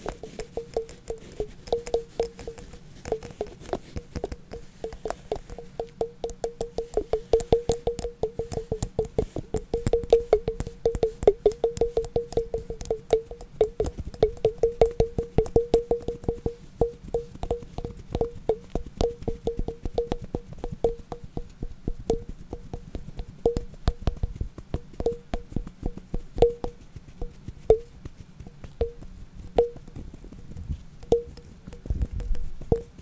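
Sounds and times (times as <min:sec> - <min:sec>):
tapping on hollow object: 0:00.0 - 0:33.0.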